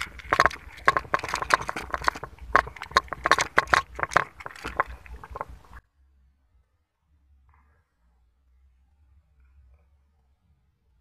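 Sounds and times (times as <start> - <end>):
cats chewing and lapping: 0.0 - 5.8.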